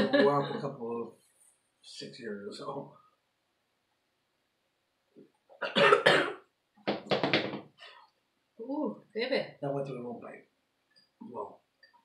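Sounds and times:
person coughing: 5.6 - 6.4.

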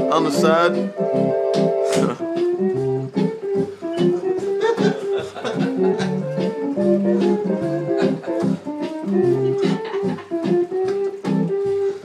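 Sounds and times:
electronic organ playing: 0.0 - 12.0
steady beat: 0.0 - 12.0.

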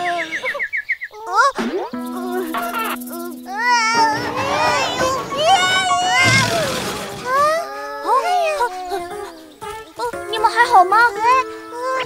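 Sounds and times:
cartoon crash clattering: 2.3 - 7.7.

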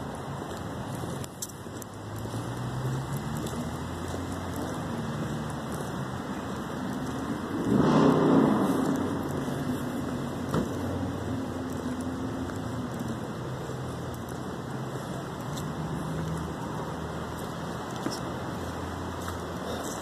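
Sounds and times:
car passing: 0.0 - 20.0
traffic hum on wet road: 0.0 - 20.0.

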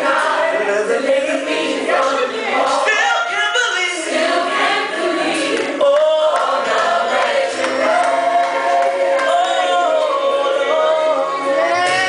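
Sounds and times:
gospel choir singing: 0.0 - 12.0
musical accompaniment: 4.2 - 12.0.

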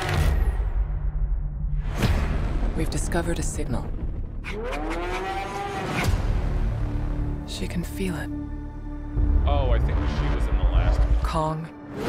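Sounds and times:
low rumble: 0.0 - 4.7.

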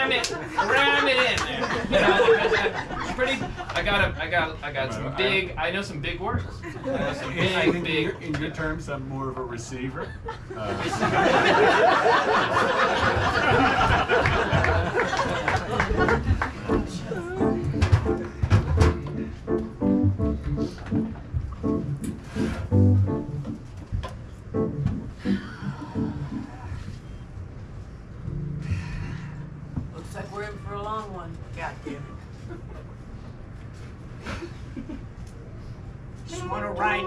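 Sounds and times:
metal chairs knocking on stage: 17.6 - 19.2.

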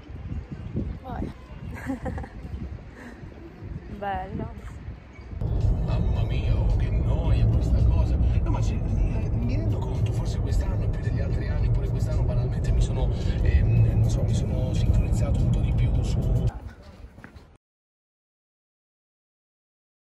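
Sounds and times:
road and engine noise in car: 4.9 - 16.6.

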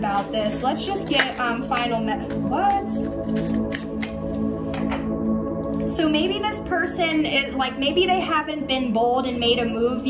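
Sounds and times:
soft ambient music: 0.0 - 10.0
cards clicking: 3.3 - 4.2.

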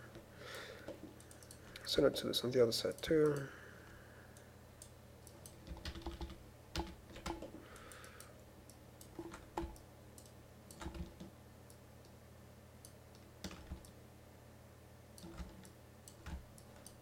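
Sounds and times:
faint low hum: 0.0 - 17.0
keyboard and mouse clicks: 0.8 - 1.8, 4.8 - 11.8, 15.2 - 17.0.

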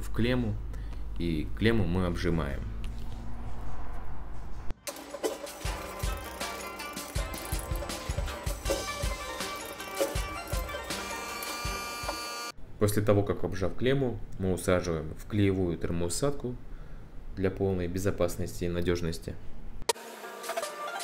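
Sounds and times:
background music with steady beat: 4.8 - 12.2.

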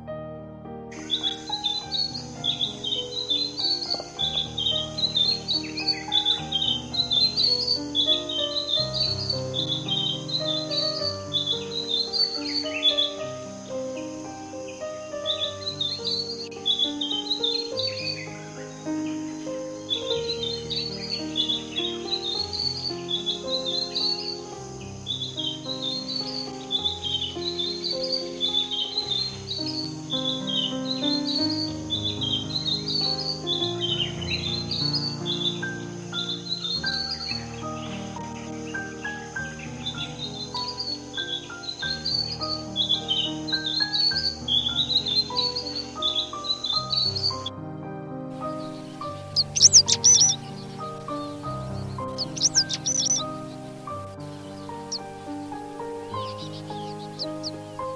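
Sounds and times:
soft background music: 0.0 - 57.9
robin singing: 0.9 - 47.6, 48.3 - 57.9.

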